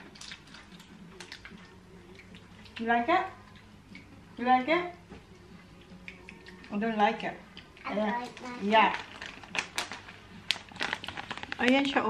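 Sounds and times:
plastic wrapper crinkling: 0:08.2 - 0:12.0.

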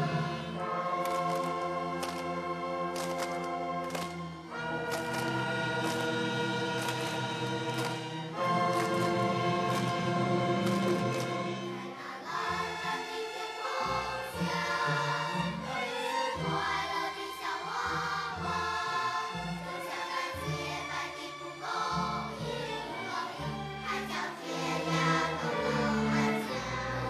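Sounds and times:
children's choir singing: 0:00.0 - 0:27.0
violins and cellos: 0:00.0 - 0:27.0.

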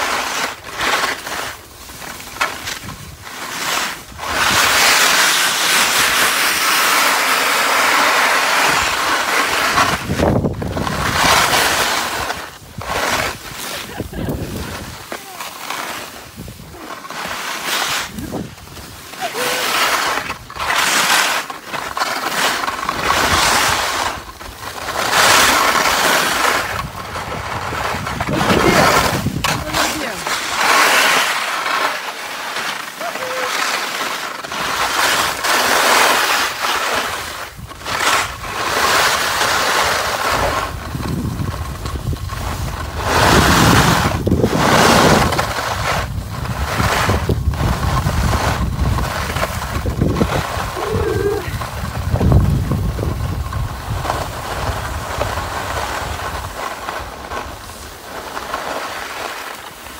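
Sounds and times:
skis scraping over snow: 0:00.0 - 0:59.9
wind rumbling on microphone: 0:01.4 - 0:03.3, 0:08.6 - 0:15.1, 0:16.2 - 0:16.8, 0:17.9 - 0:20.7, 0:22.8 - 0:30.6, 0:37.0 - 0:58.1.

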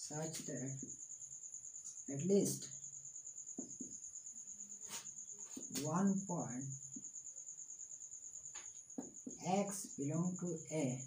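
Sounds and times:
cricket chirping: 0:00.0 - 0:11.0
marker on whiteboard: 0:03.4 - 0:07.5, 0:08.3 - 0:11.0.

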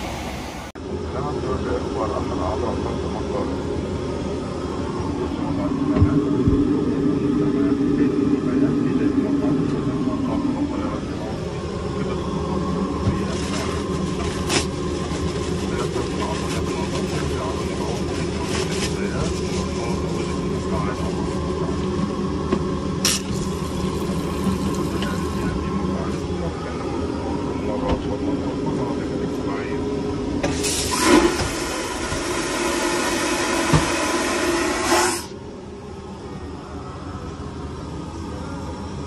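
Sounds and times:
airliner cabin roar: 0:00.0 - 0:39.0.

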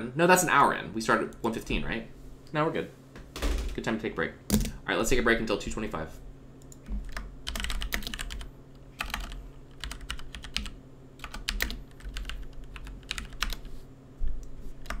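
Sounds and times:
keyboard typing: 0:06.6 - 0:13.7.

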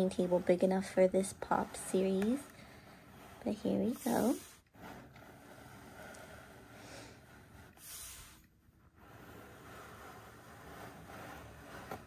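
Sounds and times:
plastic bases scraping on tabletop: 0:00.0 - 0:12.0.

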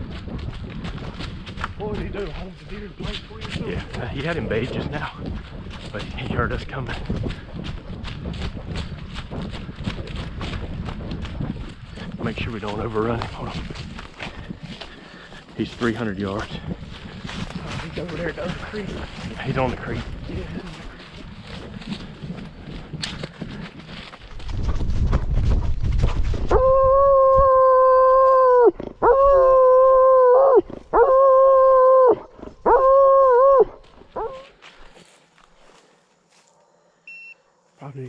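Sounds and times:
brush rustling: 0:00.0 - 0:26.5, 0:33.7 - 0:36.7
wind on microphone: 0:00.0 - 0:34.4
hound baying: 0:26.5 - 0:34.5.

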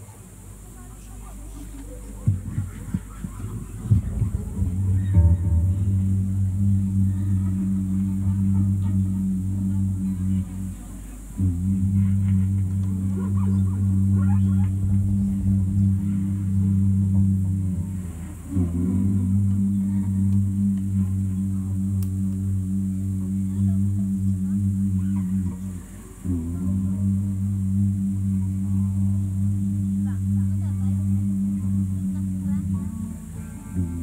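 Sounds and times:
loud low drone: 0:02.2 - 0:34.0
faint wavering higher tones: 0:02.5 - 0:34.0.

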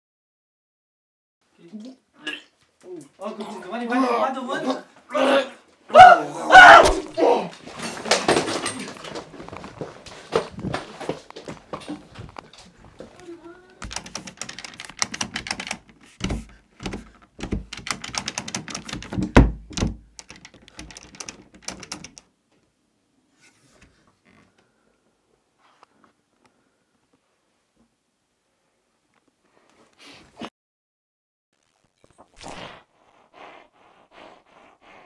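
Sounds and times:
door handle clattering: 0:13.8 - 0:22.2
heavy thumps: 0:16.2 - 0:17.9.

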